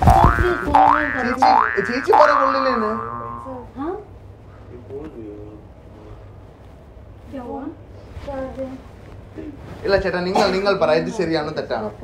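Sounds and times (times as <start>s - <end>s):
cartoon boing: 0.0s - 3.6s.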